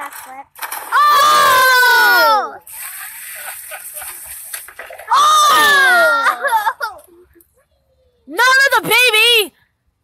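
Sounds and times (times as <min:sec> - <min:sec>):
water spraying hiss: 0:02.6 - 0:05.0.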